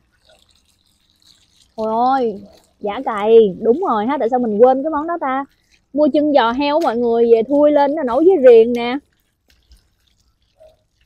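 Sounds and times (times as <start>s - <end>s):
water dripping and trickling: 0.0s - 11.0s
woman speaking: 1.8s - 9.0s.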